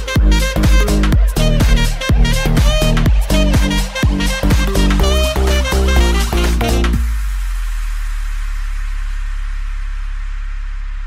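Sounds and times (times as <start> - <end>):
background music beat: 0.0 - 11.0
sustained low tone with hiss: 0.2 - 11.0.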